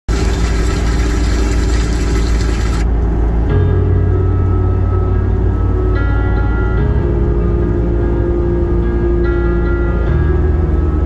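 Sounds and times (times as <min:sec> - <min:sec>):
car cabin road rumble: 0:00.0 - 0:04.2
soft sustained music tones: 0:00.1 - 0:11.0.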